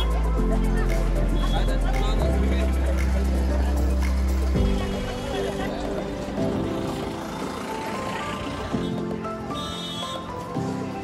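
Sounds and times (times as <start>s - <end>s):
light melodic background music: 0.0s - 11.0s
street traffic rumble: 0.0s - 11.0s.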